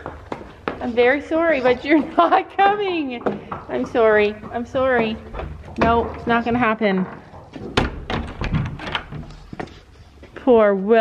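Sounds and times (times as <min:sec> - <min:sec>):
wooden door shutting: 0:07.2 - 0:09.4
metal latch clicks: 0:07.8 - 0:09.3.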